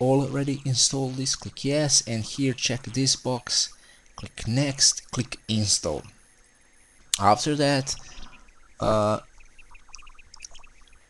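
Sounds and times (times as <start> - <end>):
man saying uh: 8.8 - 9.2
soft ticks: 9.7 - 10.7.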